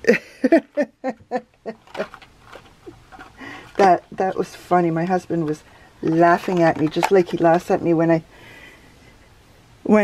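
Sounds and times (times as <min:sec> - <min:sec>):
woman laughing quietly: 0:00.0 - 0:02.2.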